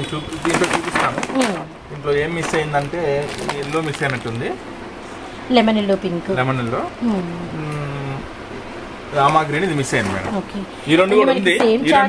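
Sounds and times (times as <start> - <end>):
plastic wrapping crinkling: 0.0 - 4.6
person talking: 11.0 - 12.0.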